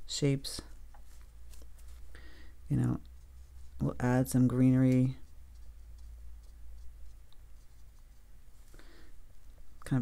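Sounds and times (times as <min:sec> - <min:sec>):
low steady hum: 0:00.0 - 0:10.0
brush dabbing on paper: 0:00.6 - 0:10.0.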